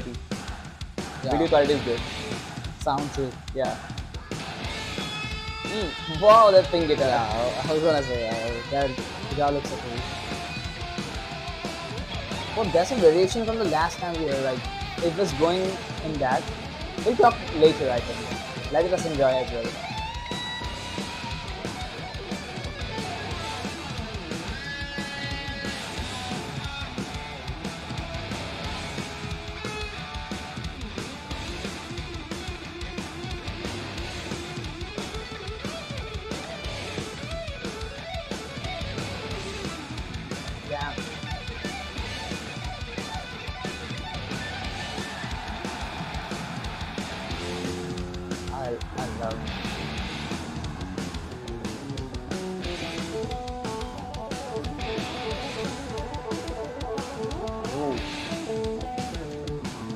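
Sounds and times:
heavy metal band playing: 0.0s - 59.9s
electric bass solo: 47.2s - 59.9s.

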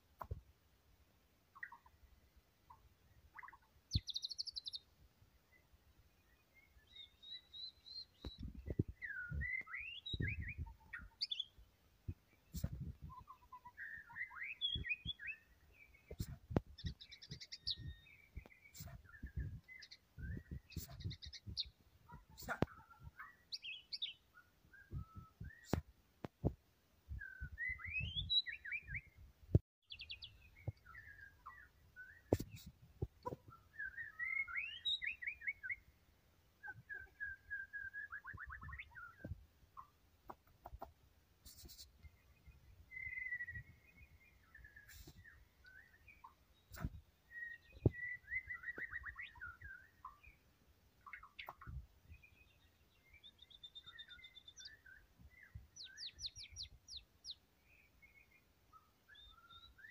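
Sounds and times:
bird singing whistled phrases: 6.8s - 11.5s, 12.6s - 15.4s, 23.6s - 25.8s, 27.2s - 29.1s, 33.7s - 35.8s, 36.8s - 39.2s, 42.9s - 43.8s, 59.1s - 59.9s.

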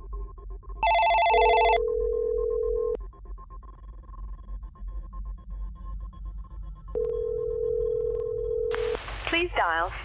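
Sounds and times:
electronic phone ring: 0.8s - 3.0s, 7.0s - 8.8s.

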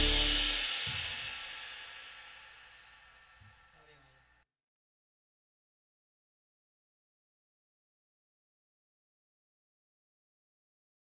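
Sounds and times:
held band chord: 0.0s - 1.2s
cymbal crash: 0.0s - 3.8s.

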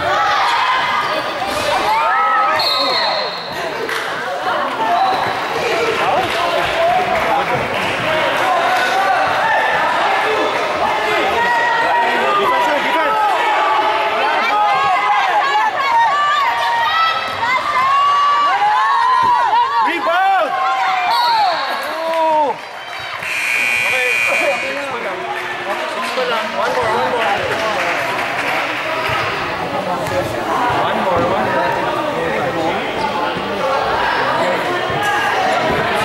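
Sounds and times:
crowd chatter: 0.0s - 36.0s
referee whistle blowing: 2.5s - 3.6s, 21.1s - 22.0s, 23.2s - 25.0s.

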